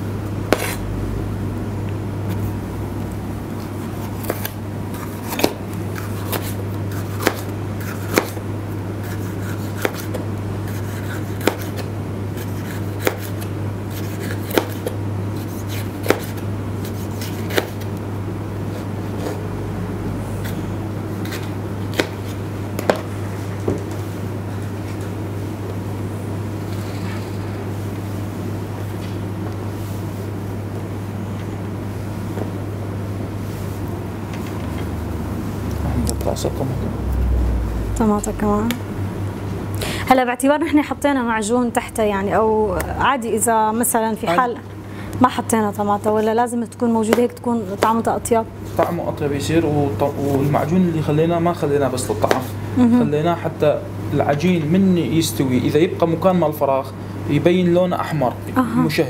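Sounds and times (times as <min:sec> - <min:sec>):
low hum: 0:34.0 - 0:43.4.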